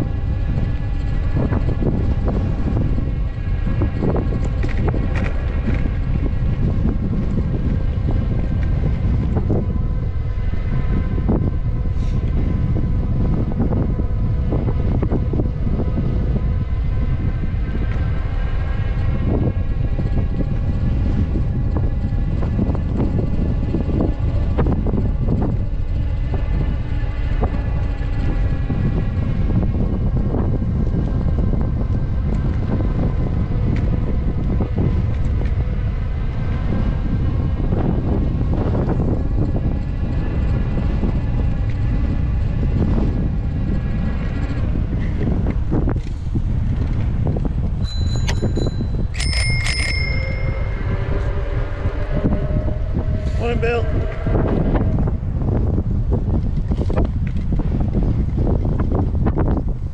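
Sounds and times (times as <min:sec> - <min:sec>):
wind buffeting microphone: 0:00.0 - 0:59.9
bicycle bell ringing: 0:47.8 - 0:51.6.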